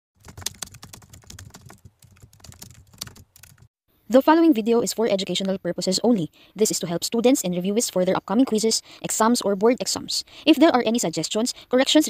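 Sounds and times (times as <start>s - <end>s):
typing on a keyboard: 0.2s - 3.7s.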